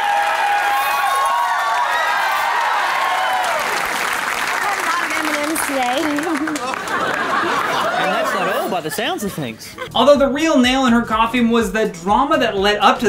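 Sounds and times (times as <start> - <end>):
studio audience cheering and applauding: 0.0 - 9.4.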